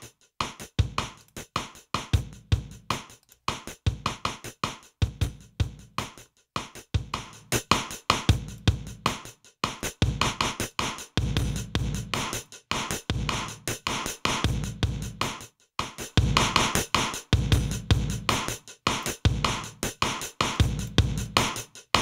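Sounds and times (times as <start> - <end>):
drum loop beat: 0.0 - 22.0.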